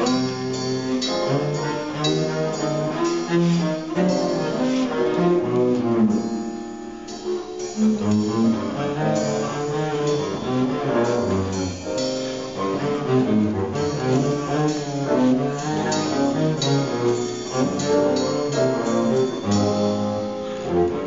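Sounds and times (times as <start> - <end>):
bowed double bass jazz solo: 0.0 - 21.0.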